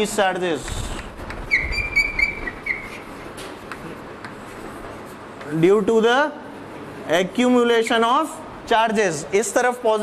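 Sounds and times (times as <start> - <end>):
chalk taps and scratches: 0.4 - 1.4, 2.2 - 5.6
chalk squeaking on blackboard: 1.5 - 3.2.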